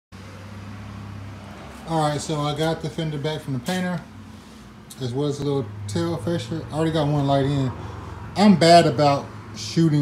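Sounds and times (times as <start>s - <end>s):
man speaking: 1.9s - 4.1s, 4.9s - 7.8s, 8.4s - 10.0s.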